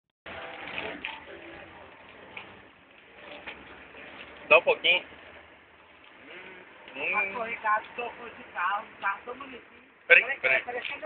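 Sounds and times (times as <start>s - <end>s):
faint indistinct voices: 0.3s - 4.6s.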